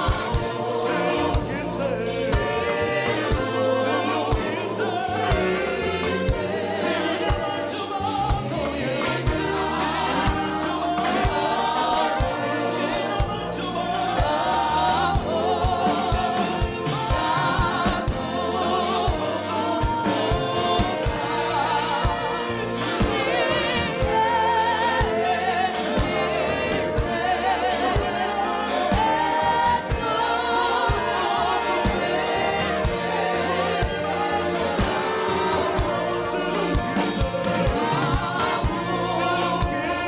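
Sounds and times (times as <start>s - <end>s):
gospel group singing in harmony: 0.0s - 40.0s
steady drum beat: 0.0s - 40.0s.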